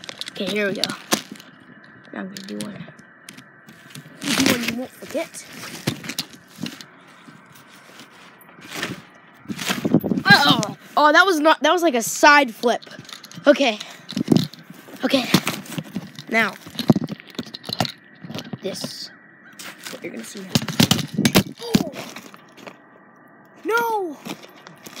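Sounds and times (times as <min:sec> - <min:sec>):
faint rustling and movement: 0:00.0 - 0:25.0.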